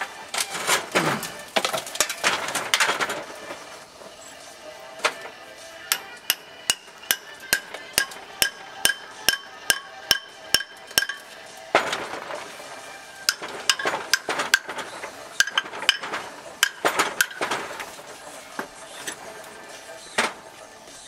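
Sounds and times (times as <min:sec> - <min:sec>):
hammer striking steel chisel: 0:05.9 - 0:11.3, 0:13.3 - 0:14.8, 0:15.4 - 0:17.5.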